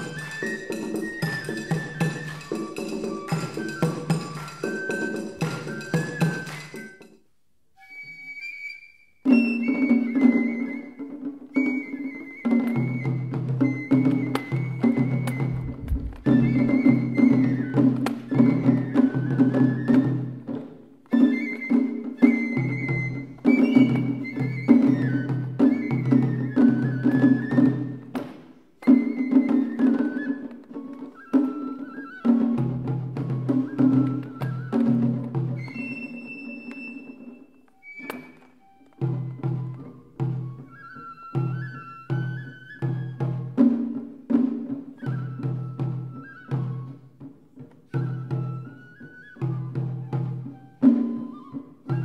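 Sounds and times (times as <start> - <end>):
small drums striking: 0.0 - 7.2, 9.3 - 31.5, 32.3 - 52.0
bamboo flute high note: 11.6 - 20.2, 28.8 - 43.3
drum ringing: 15.4 - 17.3.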